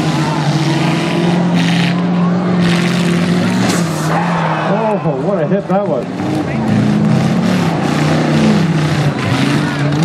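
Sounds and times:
car engines running hard: 0:00.0 - 0:10.0.

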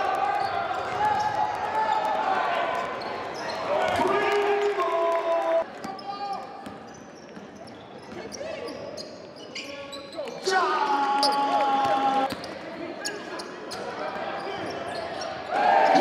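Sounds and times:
sneakers squeaking: 0:02.8 - 0:04.0, 0:05.8 - 0:10.5, 0:11.2 - 0:16.0.

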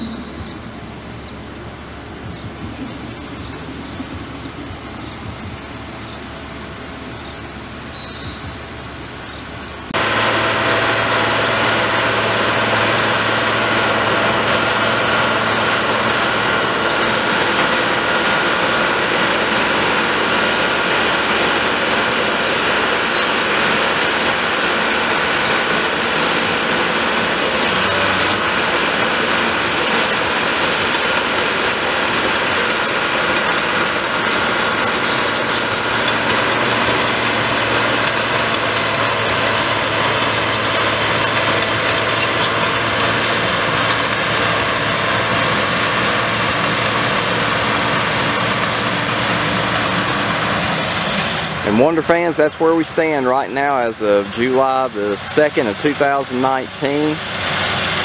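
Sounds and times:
dozer diesel engine running: 0:00.0 - 0:58.0.

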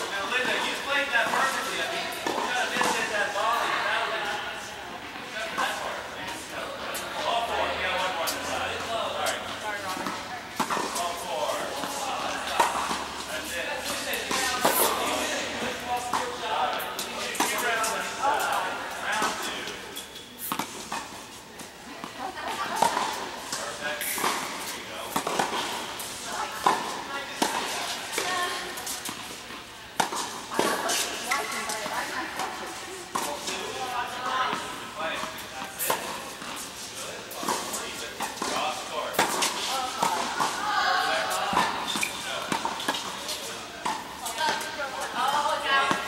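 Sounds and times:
tennis balls struck and bouncing: 0:09.3 - 0:21.2, 0:22.0 - 0:31.9, 0:37.4 - 0:46.0.

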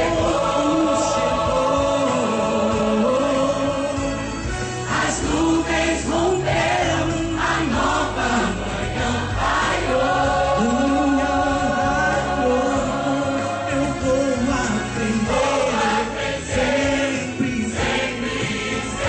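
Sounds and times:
choir singing gospel: 0:00.0 - 0:19.0
instrumental accompaniment: 0:00.0 - 0:19.0
man singing into microphone: 0:10.6 - 0:16.1.

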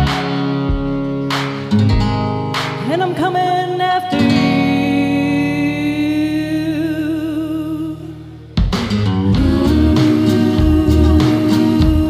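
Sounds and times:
karaoke backing track: 0:00.0 - 0:12.0.

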